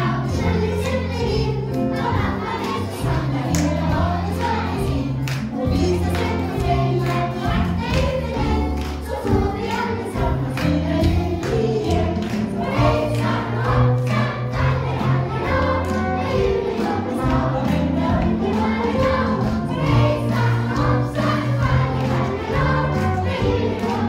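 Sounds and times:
people singing: 0.0s - 24.0s.

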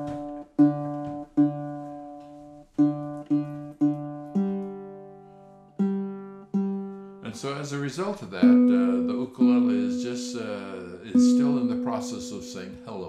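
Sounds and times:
ukulele strings plucked: 0.0s - 13.0s.

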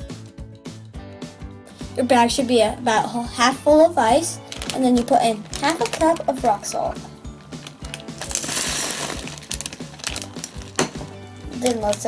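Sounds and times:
rock salt poured onto ice: 7.5s - 10.8s.

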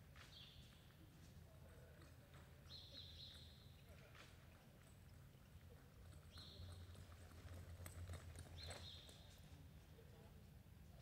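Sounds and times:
hoofbeats on soft dirt: 0.2s - 9.6s.

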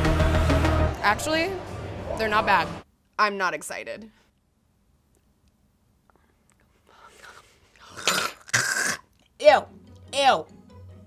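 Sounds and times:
woman breathing: 6.1s - 8.0s.

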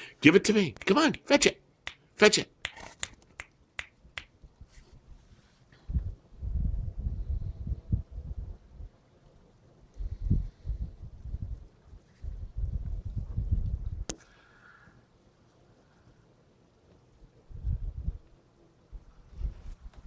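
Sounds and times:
wind buffeting microphone: 5.8s - 9.0s, 10.0s - 14.1s, 17.4s - 18.3s.

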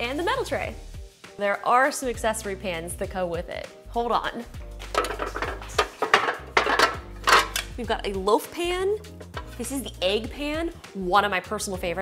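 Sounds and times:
metal baking pans clattering: 4.9s - 7.8s.

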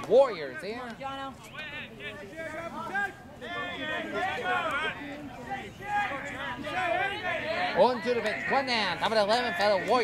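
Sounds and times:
people chatting: 0.0s - 10.0s.

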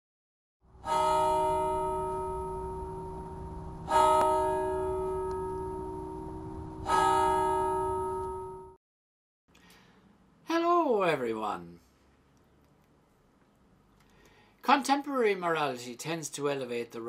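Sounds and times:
bell ringing: 0.8s - 8.8s.

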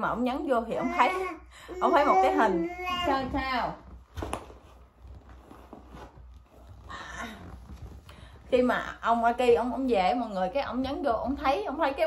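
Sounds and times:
fabric rustling: 2.6s - 10.5s.

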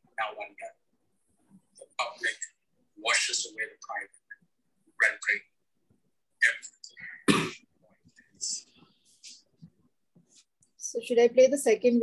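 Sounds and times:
person coughing: 7.2s - 7.7s.

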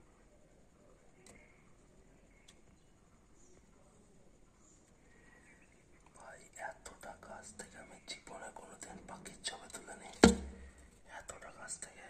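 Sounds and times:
person whispering: 6.1s - 10.2s, 11.0s - 12.0s.

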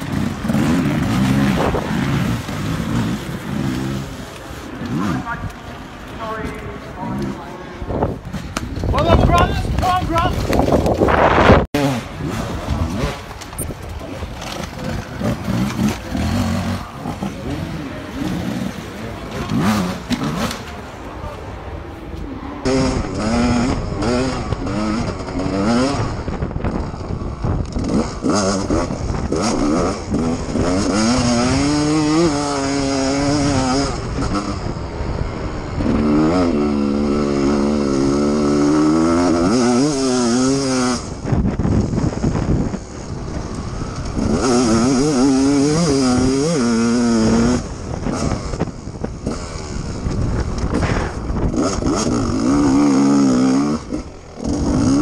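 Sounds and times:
dirt bike engine revving: 0.0s - 55.0s
wind noise: 0.0s - 55.0s.

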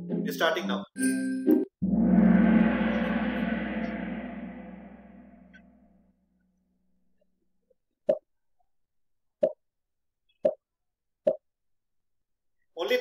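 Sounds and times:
game lobby music: 1.0s - 1.7s.

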